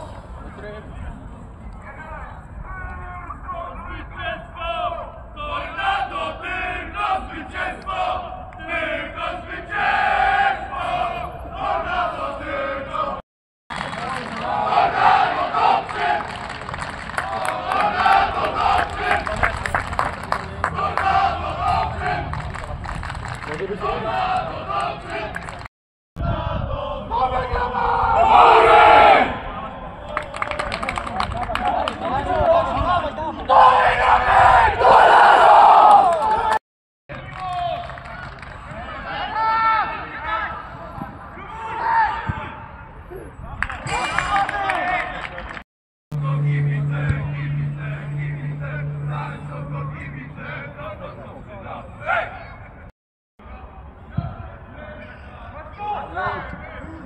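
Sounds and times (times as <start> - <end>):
group of people chanting: 5.5 - 13.2, 14.5 - 16.3, 17.2 - 19.2, 20.6 - 22.3.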